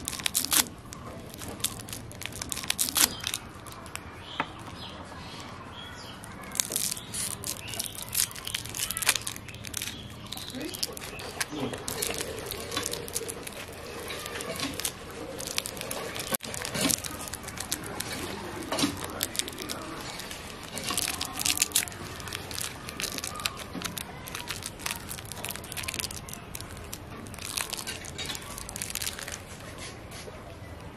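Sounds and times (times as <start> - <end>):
foil wrappers crinkling and tearing: 0.0 - 30.1.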